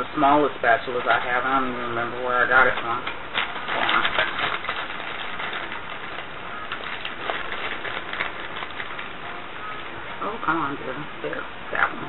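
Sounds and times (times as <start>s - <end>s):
plastic spatulas clicking and rattling: 2.7s - 9.1s.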